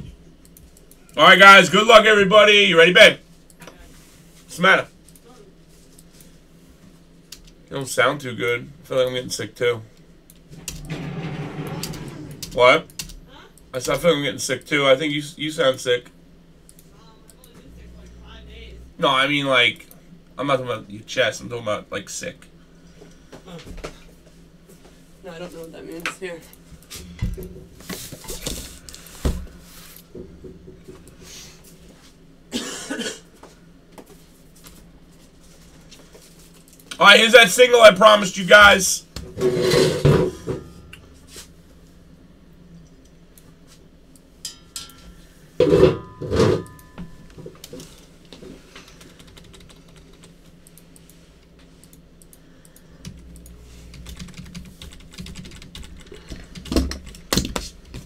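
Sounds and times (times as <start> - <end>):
man coughing: 32.5 - 33.4
typing on computer keyboard: 48.9 - 50.4, 53.9 - 57.6.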